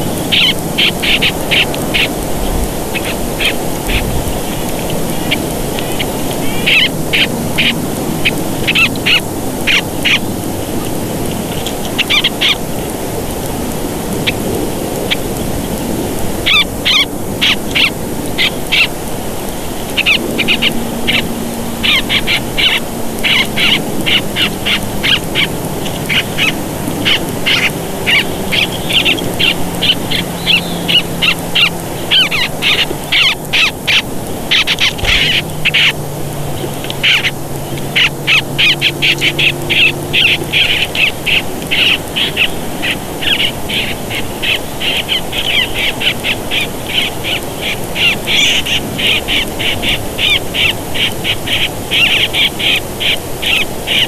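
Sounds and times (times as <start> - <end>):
birds chirping: 0.0 - 54.0
steady outdoor hiss: 0.0 - 54.0.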